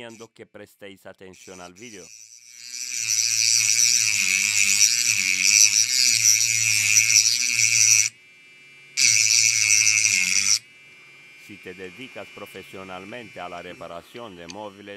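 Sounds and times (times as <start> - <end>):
rotary tool grinding metal: 0.0 - 0.2, 1.4 - 8.2, 9.0 - 10.6.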